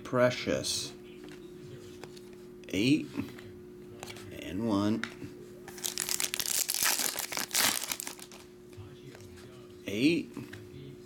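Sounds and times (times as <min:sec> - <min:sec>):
foil wrapper crinkling: 0:05.7 - 0:08.5.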